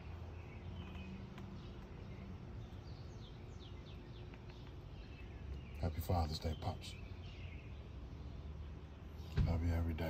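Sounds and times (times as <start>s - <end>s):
distant bird chirps: 0.0s - 10.0s.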